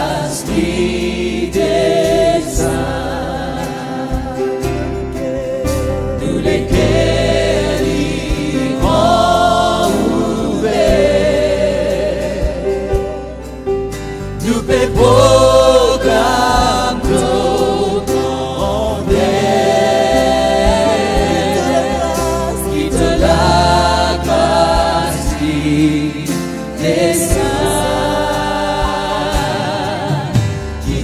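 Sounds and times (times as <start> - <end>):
electric bass: 0.0 - 31.0
keyboard: 0.0 - 31.0
man singing with vibrato: 3.6 - 13.4, 14.4 - 31.0.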